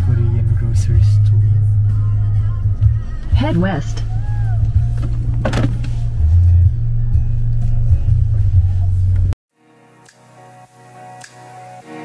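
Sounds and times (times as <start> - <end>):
car rumbling: 0.0 - 9.4
music with heavy bass: 0.0 - 9.4.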